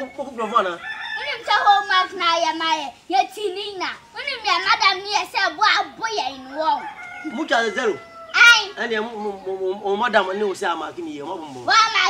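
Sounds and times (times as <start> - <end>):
children talking: 0.0 - 12.0
man talking: 7.2 - 8.1, 8.7 - 11.7.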